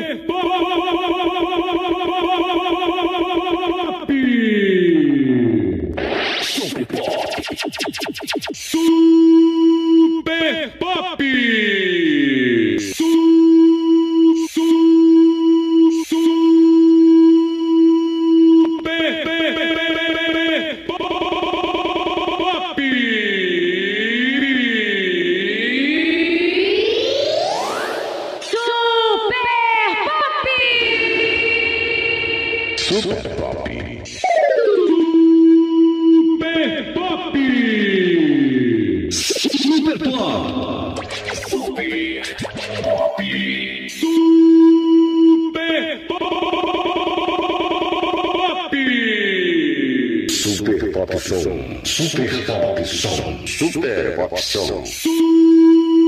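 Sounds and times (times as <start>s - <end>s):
swooping synthesized tone: 5.9s - 10.2s, 25.4s - 28.6s, 39.1s - 45.6s
pulsing synth chord: 26.0s - 28.4s.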